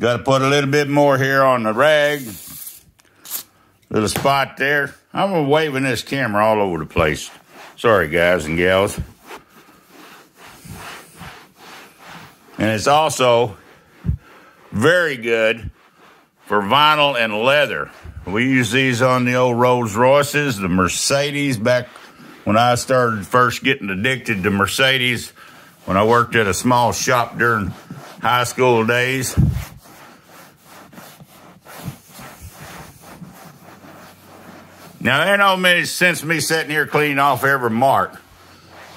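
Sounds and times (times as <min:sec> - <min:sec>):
cloth rubbing on vinyl: 0:00.1 - 0:03.4, 0:04.0 - 0:38.9.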